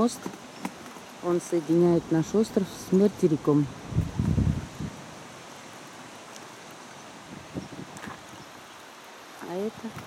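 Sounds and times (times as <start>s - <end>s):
wind and water hiss: 0.0s - 10.0s.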